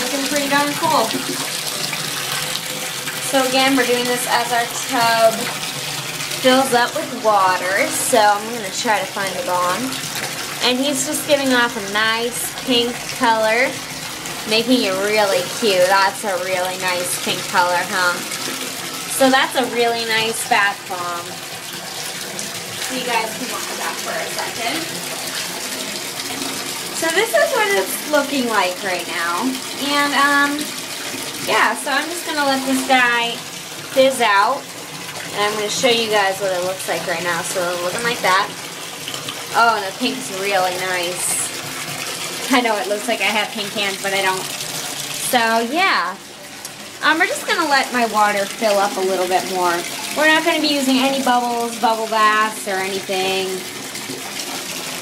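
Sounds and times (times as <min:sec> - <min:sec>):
bath tap running: 0:00.0 - 0:55.0.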